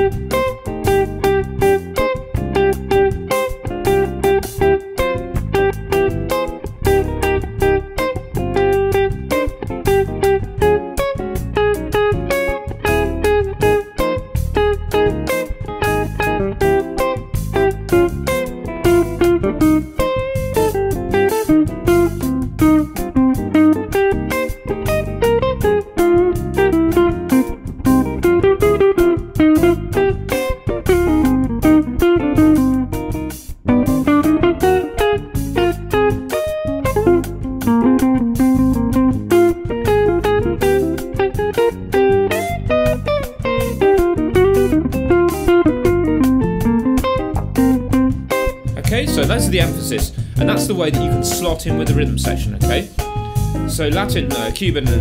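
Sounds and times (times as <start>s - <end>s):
electric jazz guitar melody: 0.0s - 55.0s
samba backing track: 0.0s - 55.0s.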